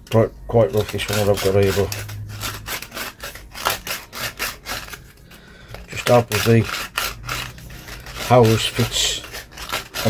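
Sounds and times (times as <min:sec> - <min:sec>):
sandpaper rubbing on pipe fitting: 0:00.6 - 0:10.0.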